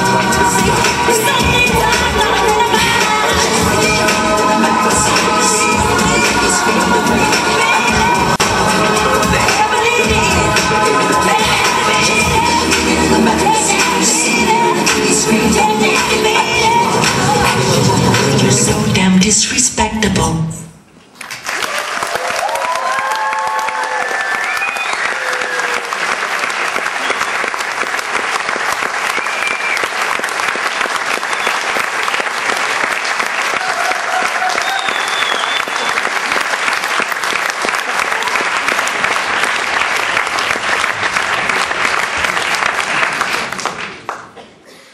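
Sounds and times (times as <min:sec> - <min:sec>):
audience applauding: 0:21.2 - 0:44.6
shouted cheers: 0:21.6 - 0:26.0, 0:33.5 - 0:35.9.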